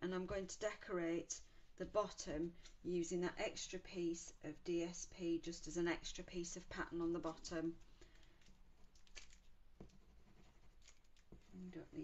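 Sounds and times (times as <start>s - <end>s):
faint ticks and scrapes: 7.3s - 12.0s.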